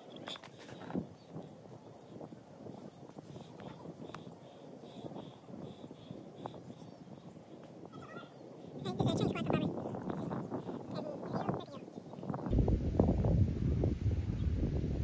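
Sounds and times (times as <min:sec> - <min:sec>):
wind rushing: 0:00.8 - 0:15.0
faint clicks: 0:03.1 - 0:04.3.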